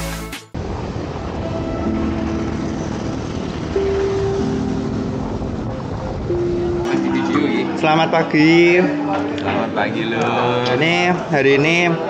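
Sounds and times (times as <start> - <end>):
bicycle road noise: 0.6 - 10.1
wind rushing: 0.6 - 12.0
music with held notes: 1.5 - 12.0.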